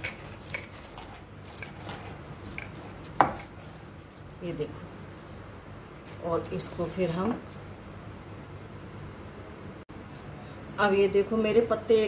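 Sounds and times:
glass bangles clinking: 0.0s - 4.3s.

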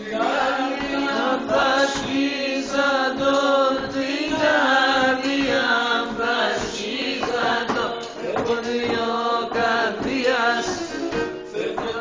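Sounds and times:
man singing: 0.0s - 12.0s.

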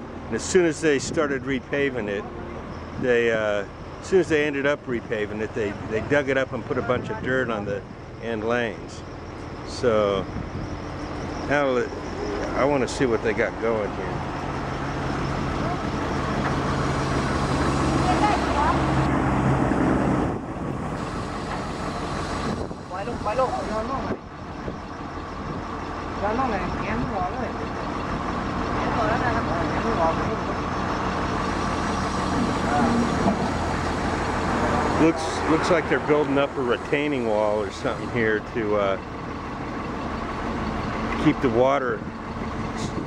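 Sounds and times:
excavator diesel engine running: 0.0s - 43.0s.

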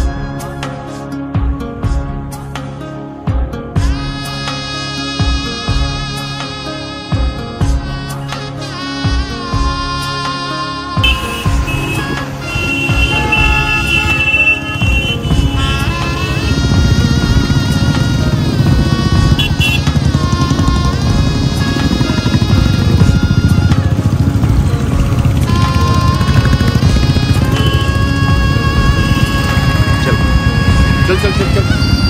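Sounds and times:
music playing: 0.0s - 32.0s
motorcycle engines: 11.0s - 32.0s.

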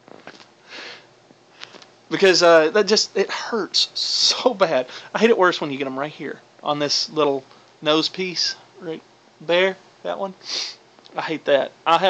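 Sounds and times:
man sniffing through nose: 0.6s - 1.8s, 10.4s - 10.8s.

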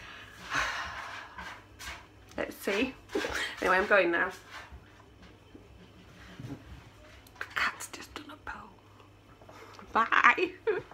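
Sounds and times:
woman whispering: 7.4s - 8.9s.

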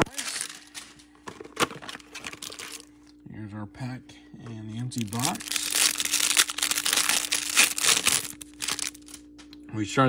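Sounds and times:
foil wrapper crinkling and tearing: 0.0s - 1.0s, 1.6s - 2.9s, 4.9s - 9.2s.

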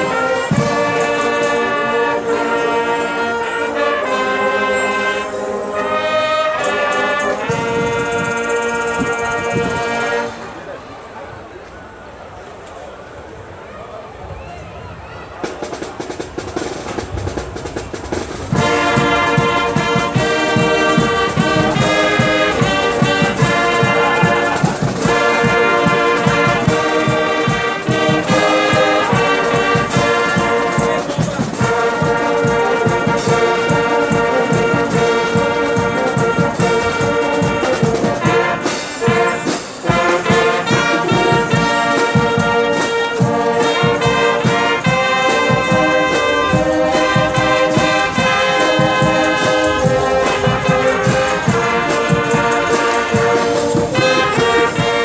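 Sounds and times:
brass band playing chords: 0.0s - 11.2s, 15.4s - 55.0s.

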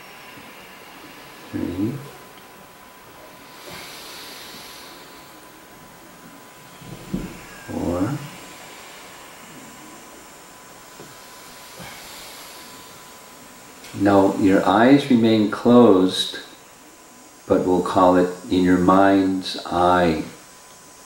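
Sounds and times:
faint constant tone: 0.0s - 21.0s
steady hiss: 0.0s - 21.0s
slow deep breathing: 3.2s - 14.4s.

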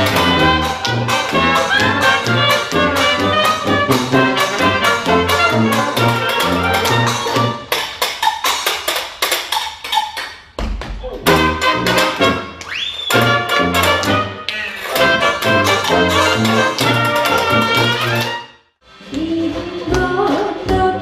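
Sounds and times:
dixieland jazz band playing: 0.0s - 7.7s, 11.2s - 18.6s.

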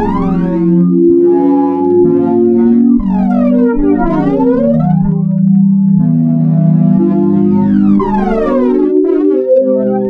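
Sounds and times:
ambient synthesizer music: 0.0s - 10.0s.

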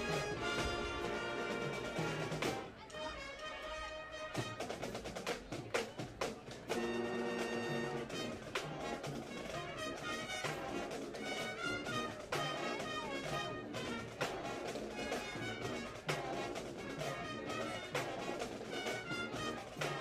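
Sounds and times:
drum line strikes: 0.0s - 2.8s, 4.2s - 20.0s
marching band brass tune: 0.0s - 20.0s.

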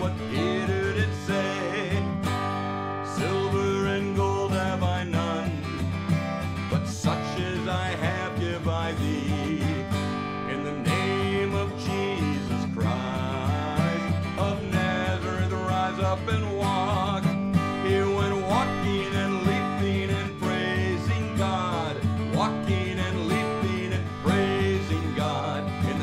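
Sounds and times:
acoustic guitar strumming: 0.0s - 26.0s
man singing: 0.0s - 26.0s.

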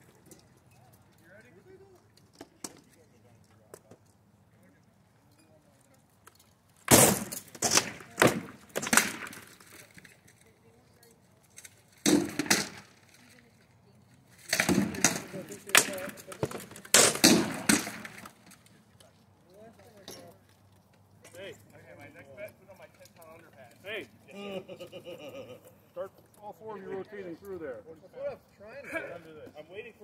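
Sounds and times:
weapons striking shields and armour: 6.9s - 9.4s, 14.5s - 18.2s.

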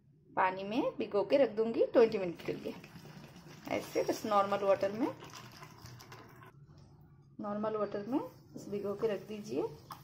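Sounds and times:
water pouring and splashing: 2.4s - 6.5s, 9.7s - 10.0s.

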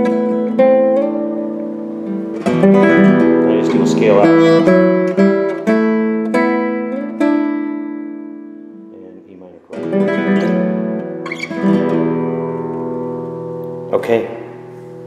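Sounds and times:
classical guitar fingerstyle: 0.0s - 15.0s.

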